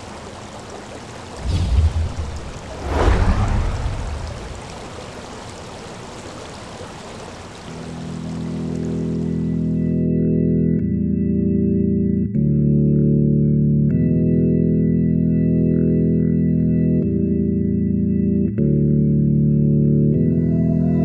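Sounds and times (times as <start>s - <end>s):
heavy splashes: 0.0s - 8.3s
rushing water: 0.0s - 10.0s
organ chords: 9.2s - 20.5s.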